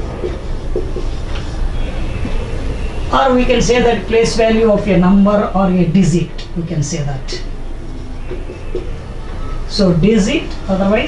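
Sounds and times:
marker writing on whiteboard: 0:00.2 - 0:01.5.

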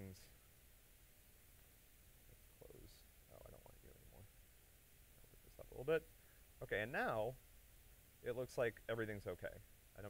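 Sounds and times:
faint hiss: 0:00.0 - 0:10.0
faint low rumbles: 0:00.0 - 0:10.0.

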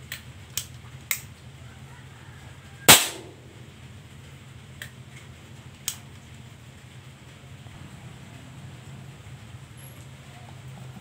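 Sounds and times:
air rifle shot: 0:02.9 - 0:03.6.

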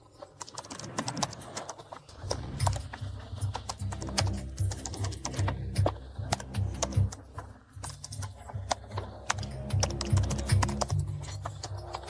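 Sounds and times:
keyboard typing clicks: 0:00.2 - 0:12.0
music with pulsing bass: 0:02.3 - 0:12.0.

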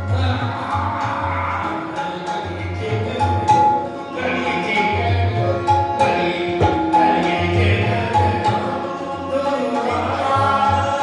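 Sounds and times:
harmonium notes: 0:00.0 - 0:11.0
person singing: 0:00.0 - 0:11.0
tabla beat: 0:00.0 - 0:11.0.

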